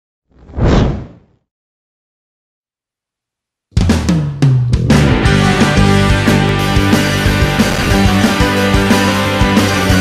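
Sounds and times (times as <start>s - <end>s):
whoosh transition effect: 0.3s - 1.3s.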